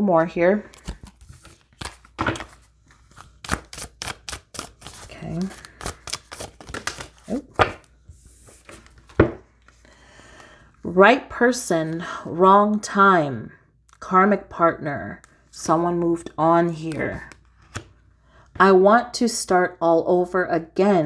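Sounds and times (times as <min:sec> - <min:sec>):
cards being shuffled: 0:00.6 - 0:09.8, 0:16.9 - 0:18.0.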